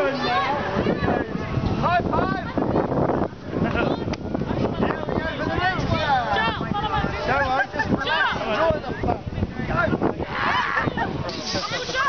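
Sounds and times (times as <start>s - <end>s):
excited voices: 0.0s - 12.0s
wind on microphone: 0.0s - 12.0s
laughter: 7.4s - 8.7s.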